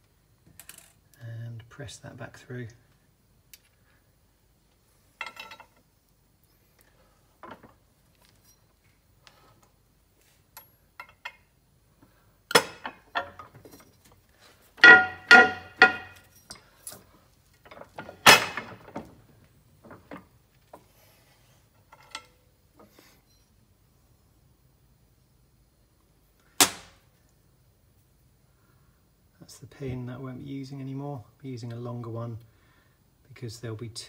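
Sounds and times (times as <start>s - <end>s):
metal parts clinking on steel plate: 14.8s - 17.1s.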